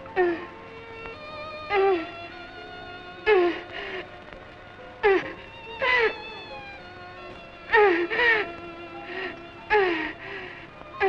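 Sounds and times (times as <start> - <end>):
woman crying with wails: 1.7 - 2.4, 3.3 - 4.1, 5.0 - 6.7, 7.7 - 10.4.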